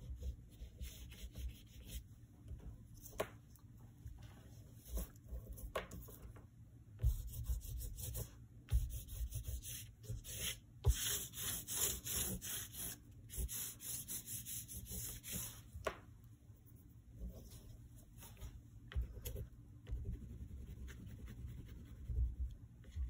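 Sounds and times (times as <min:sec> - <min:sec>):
oil pastel scratching on paper: 0:00.0 - 0:02.1, 0:04.7 - 0:06.2, 0:07.0 - 0:15.7, 0:19.2 - 0:23.0.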